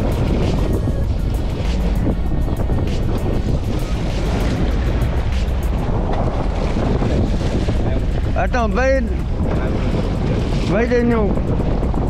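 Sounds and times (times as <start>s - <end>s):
boat engine drone: 0.0s - 12.0s
sea washing against hull: 0.0s - 12.0s
wind buffeting microphone: 0.0s - 12.0s.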